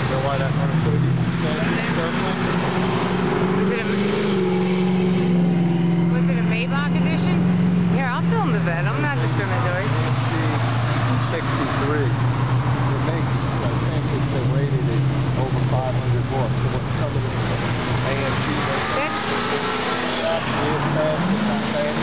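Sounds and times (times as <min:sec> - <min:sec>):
people talking: 0:00.0 - 0:02.8, 0:03.6 - 0:04.4, 0:06.0 - 0:12.2, 0:12.9 - 0:22.0
car engine passing: 0:00.0 - 0:22.0.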